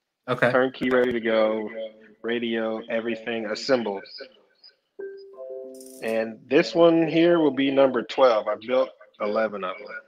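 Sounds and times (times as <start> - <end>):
steady musical tones and chord: 5.0 - 6.4.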